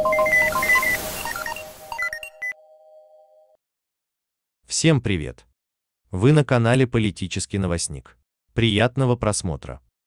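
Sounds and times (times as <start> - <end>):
short electronic beeps: 0.0 - 2.6.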